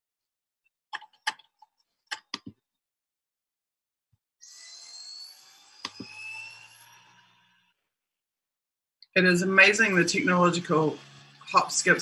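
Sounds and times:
computer mouse or keyboard clicks: 1.0 - 2.5
mechanical whirring-scraping noise: 4.4 - 7.8, 9.4 - 12.0.

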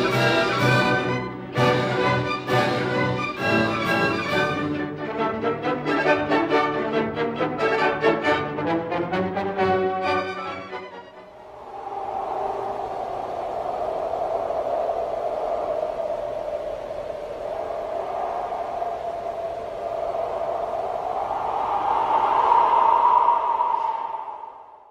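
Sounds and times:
breathy whooshing: 11.3 - 24.9.

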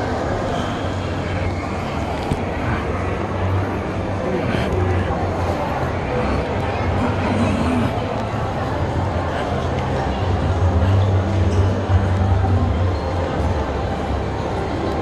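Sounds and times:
crowd of indistinct voices: 0.0 - 15.0.

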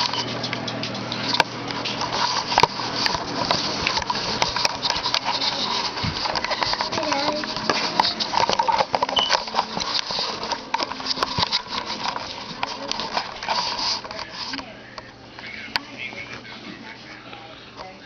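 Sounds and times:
muffled voice: 10.4 - 18.0.

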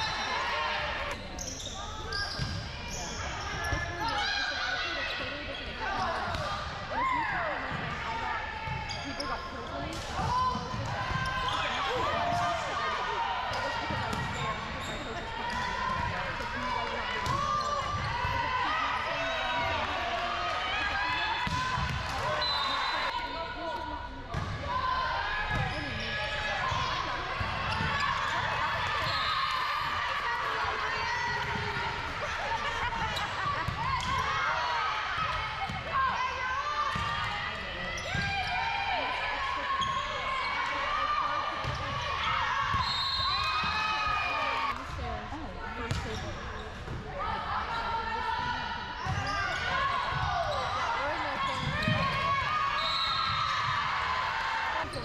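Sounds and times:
voices of players and spectators: 0.0 - 55.0.

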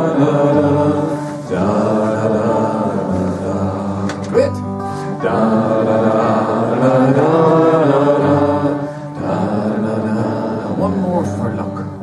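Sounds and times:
group of voices singing: 0.0 - 12.0
strummed acoustic guitar: 0.0 - 12.0.

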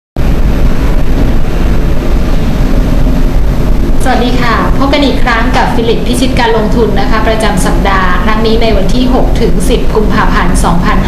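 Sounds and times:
steady low rumble with hiss: 0.2 - 11.0.

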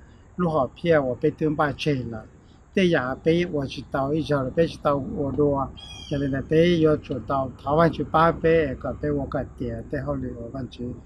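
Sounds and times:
man speaking: 0.4 - 11.0.

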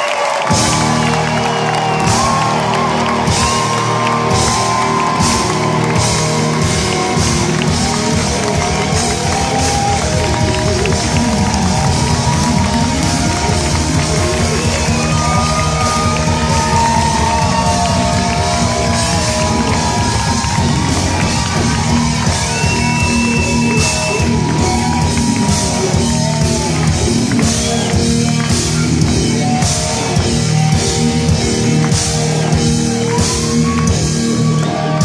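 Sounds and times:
live rock band: 0.2 - 35.0.

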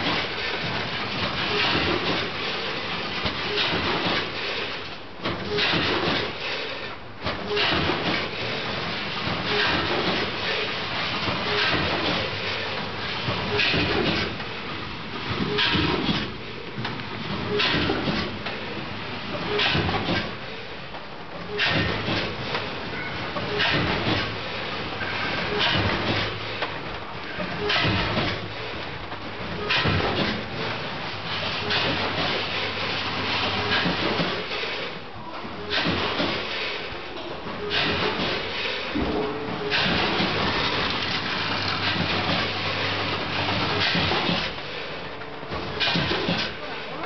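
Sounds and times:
bagging machine clattering: 0.0 - 47.0.

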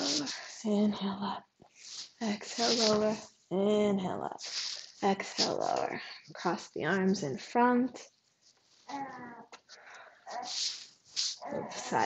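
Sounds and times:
soft breathy hissing: 0.0 - 0.7, 1.7 - 3.2, 4.4 - 5.0, 9.7 - 12.0
baby whining: 8.9 - 9.5.

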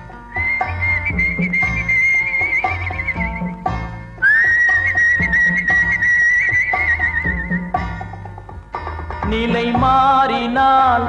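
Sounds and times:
steady drum beat: 0.0 - 10.2
whistle-like melody with vibrato: 0.3 - 3.6, 4.2 - 7.7.

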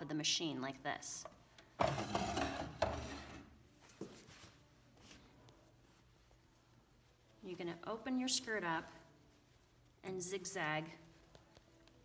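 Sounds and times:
fabric rustling: 3.7 - 12.0.

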